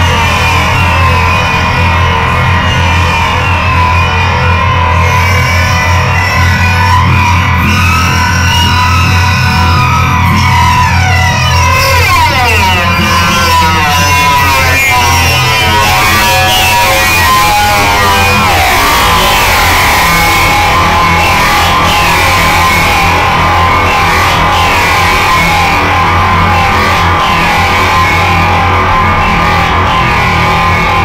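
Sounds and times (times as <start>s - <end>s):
tones gliding downward: 0.0s - 31.0s.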